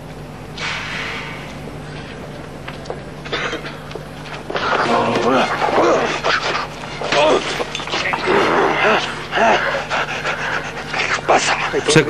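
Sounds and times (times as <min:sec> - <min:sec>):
panting breaths: 0:04.6 - 0:12.0.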